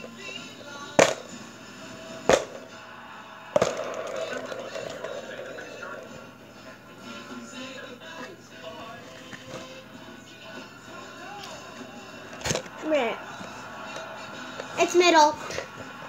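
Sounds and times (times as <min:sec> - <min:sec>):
video music and voices on speaker: 0:00.0 - 0:16.0.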